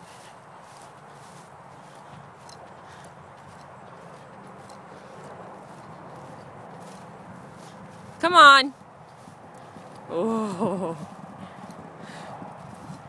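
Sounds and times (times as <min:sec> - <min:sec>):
footsteps through grass: 0:00.0 - 0:13.0.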